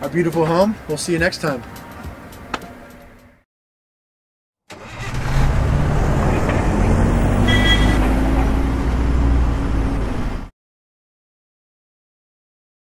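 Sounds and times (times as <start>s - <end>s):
vehicle engine starting and running: 4.7s - 10.5s.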